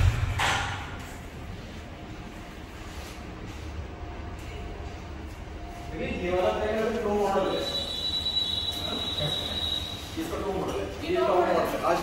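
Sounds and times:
high-pitched whine: 4.0 - 11.0.

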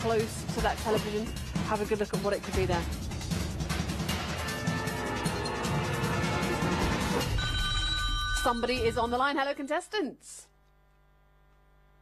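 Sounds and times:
background music: 0.0 - 9.9
electronic telephone ring: 7.2 - 9.0.

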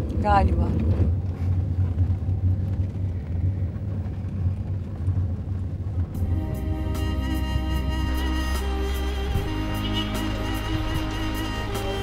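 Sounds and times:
car interior rumble: 0.0 - 12.0
soft music with held notes: 6.2 - 12.0.

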